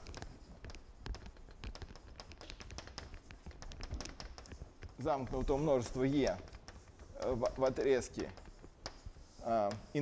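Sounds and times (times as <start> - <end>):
chalk scratching on blackboard: 0.0 - 10.0.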